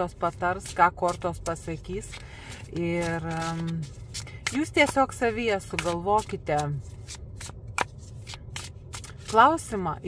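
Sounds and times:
cards being shuffled by hand: 0.2s - 9.8s.

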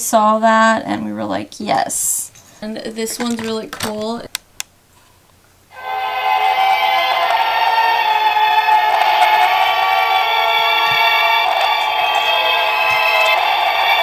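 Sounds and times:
tune from small speaker: 5.7s - 14.0s.

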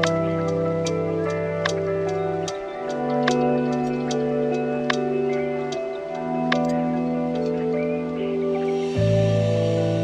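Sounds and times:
ticking percussion: 0.0s - 7.6s
held chords: 0.0s - 10.0s.

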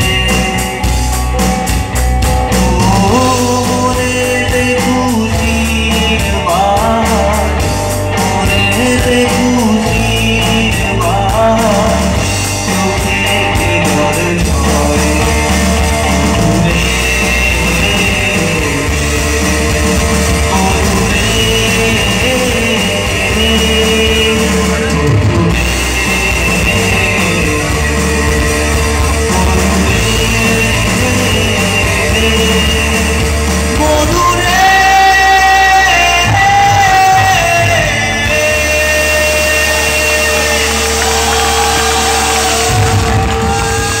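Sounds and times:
held high lead guitar notes: 0.0s - 44.0s
keyboard: 0.0s - 44.0s
live rock band music: 0.0s - 44.0s
steady low bass: 0.0s - 44.0s.

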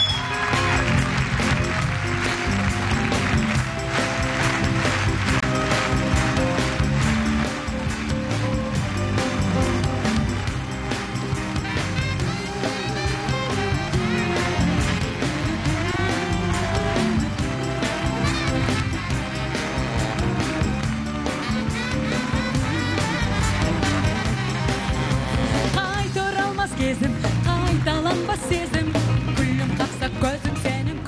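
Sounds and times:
fast conga and drum kit percussion: 0.0s - 30.4s
band playing up-tempo pop song: 0.0s - 31.0s.

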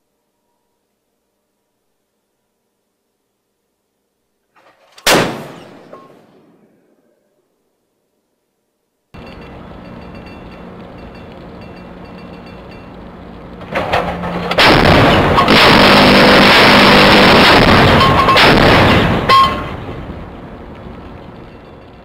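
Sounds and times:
low steady hum: 0.0s - 22.0s
deck gun blast: 4.6s - 6.7s, 13.7s - 20.0s.

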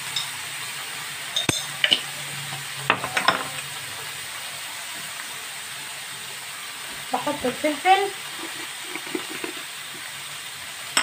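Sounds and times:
duck sizzling in hot fat: 0.0s - 11.0s.

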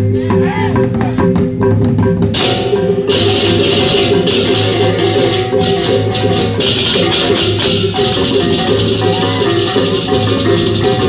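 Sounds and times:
gamelan music with drumming: 0.0s - 11.0s
clattering cymbals: 2.3s - 11.0s.

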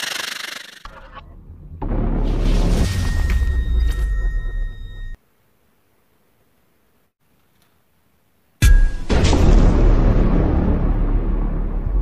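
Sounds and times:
high steady ringing tone: 2.9s - 5.2s.

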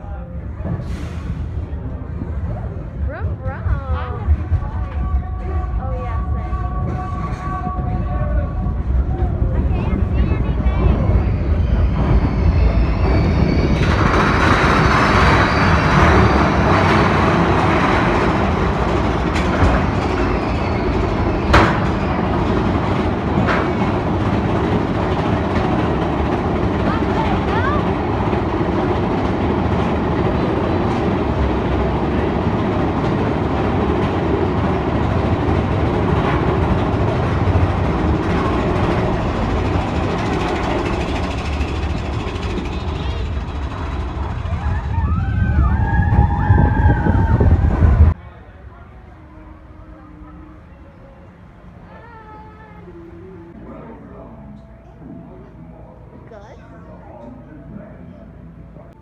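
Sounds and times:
roller coaster rumbling and clattering: 0.0s - 59.0s
loud rushing noise: 0.6s - 48.2s.

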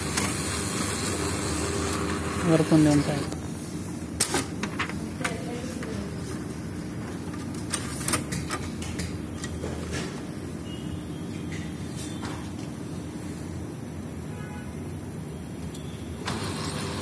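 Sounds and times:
steady background hum: 0.0s - 17.0s
printer parts and paper clicking: 7.3s - 10.2s.

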